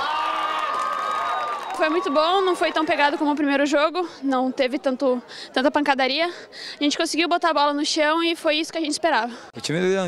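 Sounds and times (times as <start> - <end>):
voices cheering and shouting: 0.0 - 3.6.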